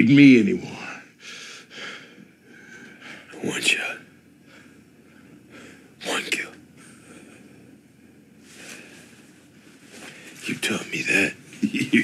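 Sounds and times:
man breathing: 1.2 - 3.3, 4.4 - 6.0, 6.8 - 7.8, 8.4 - 9.3.

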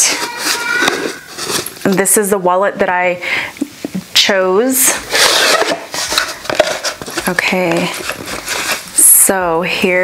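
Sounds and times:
cardboard scraping on cardboard: 5.0 - 9.0.

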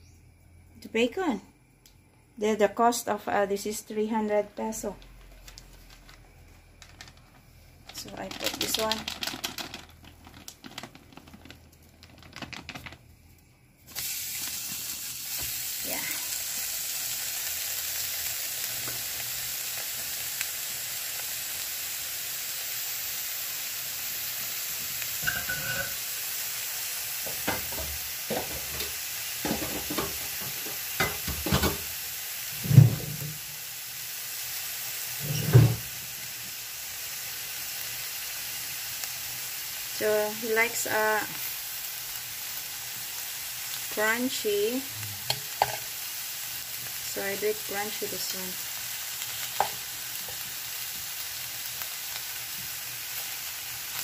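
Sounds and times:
bacon sizzling in a pan: 8.0 - 12.0, 13.6 - 54.0
knocks and thumps: 32.6 - 33.4.

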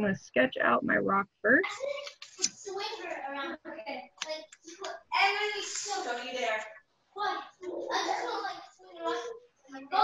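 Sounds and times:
child's voice: 0.0 - 6.5, 7.2 - 10.0.

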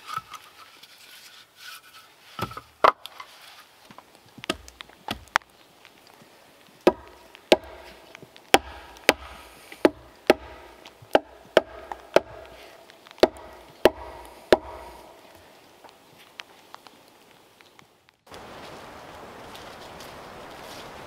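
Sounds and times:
hatchet striking wooden log: 4.4 - 5.4, 6.8 - 15.4.

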